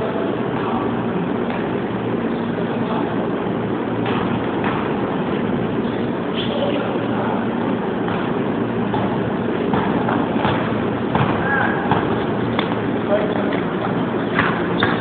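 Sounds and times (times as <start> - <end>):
echoing gymnasium din: 0.0 - 15.0.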